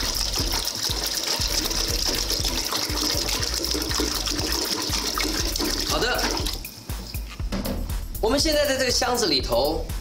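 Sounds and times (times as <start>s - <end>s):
water pouring and splashing: 0.0s - 6.6s.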